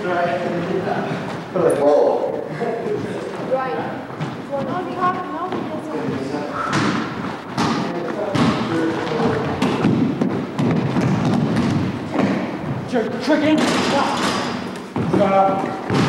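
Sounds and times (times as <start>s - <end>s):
players' indistinct voices: 0.0s - 16.0s
basketball bouncing on wooden floor: 6.6s - 12.9s, 13.6s - 16.0s.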